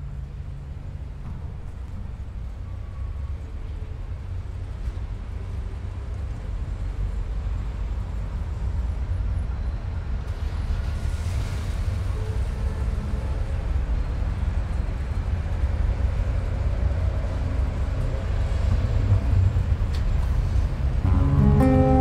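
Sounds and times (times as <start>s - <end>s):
faint held tones: 21.0s - 22.0s.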